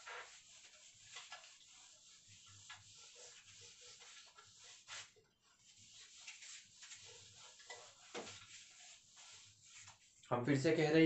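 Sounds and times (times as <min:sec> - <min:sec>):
cloth wiping a whiteboard: 0:00.0 - 0:10.3.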